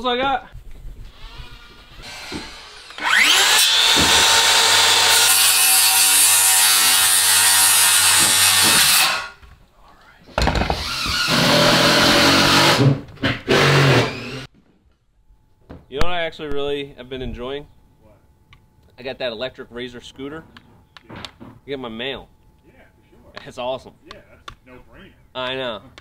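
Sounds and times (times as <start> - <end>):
circular saw cutting wood: 1.1 - 9.4, 10.8 - 14.5.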